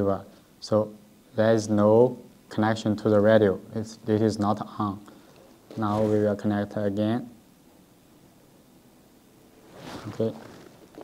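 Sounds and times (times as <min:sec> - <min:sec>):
faint handling noise: 0:05.3 - 0:06.4, 0:09.6 - 0:11.0
short rush of noise: 0:09.6 - 0:11.0.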